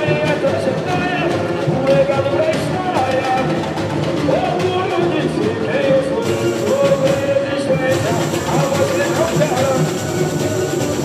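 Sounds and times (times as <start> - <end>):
samba drums playing: 0.0 - 11.0
voices singing: 0.0 - 11.0.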